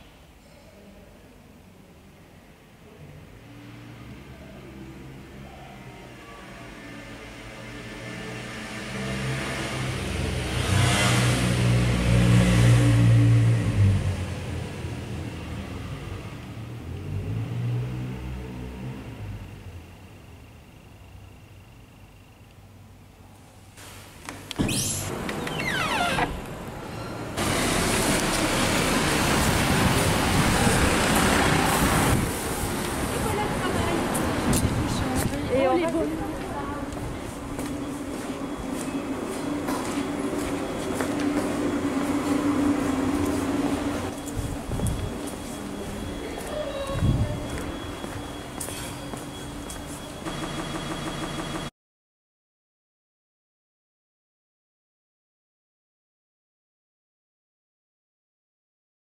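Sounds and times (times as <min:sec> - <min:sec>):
street noise: 0:00.0 - 0:51.7
vehicle rumbling past: 0:06.0 - 0:19.9.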